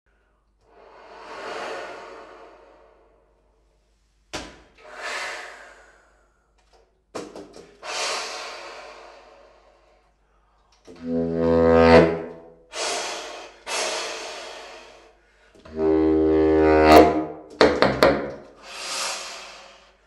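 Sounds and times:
baritone saxophone breath sounds: 0:00.7 - 0:03.6, 0:07.8 - 0:17.2.

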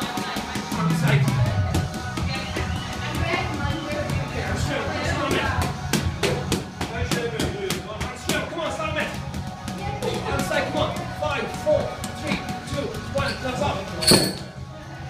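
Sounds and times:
background music with voice: 0:00.0 - 0:15.0.

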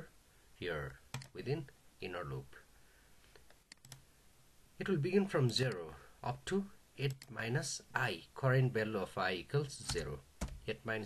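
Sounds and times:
man speaking: 0:00.0 - 0:02.7, 0:04.8 - 0:11.0.

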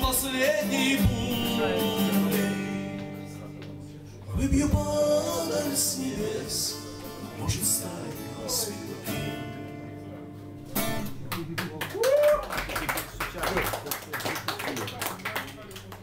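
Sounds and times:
acoustic guitar chord ringing: 0:00.0 - 0:11.3
audience clapping: 0:11.0 - 0:16.0
voices over applause: 0:11.2 - 0:16.0.

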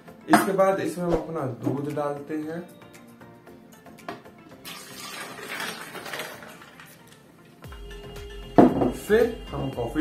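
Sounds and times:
milk pouring into blender jar: 0:04.6 - 0:07.2.

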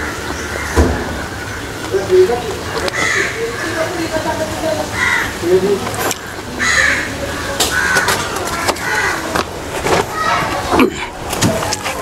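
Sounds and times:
birds cawing: 0:00.0 - 0:09.5.

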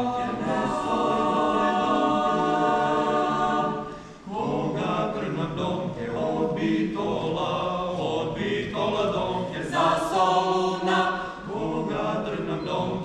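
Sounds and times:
mixed choir singing a cappella: 0:00.0 - 0:13.0
breath: 0:03.9 - 0:04.3, 0:11.2 - 0:11.5.

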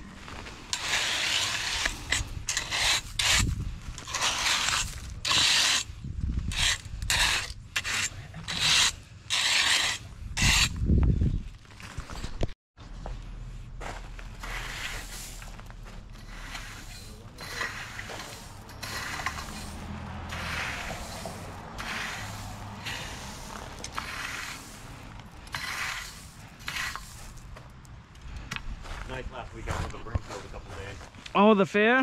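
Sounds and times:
rake scraping gravel: 0:00.0 - 0:31.3.

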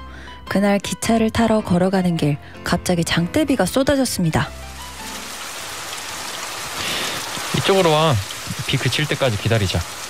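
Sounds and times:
heavy rain: 0:04.5 - 0:10.0.

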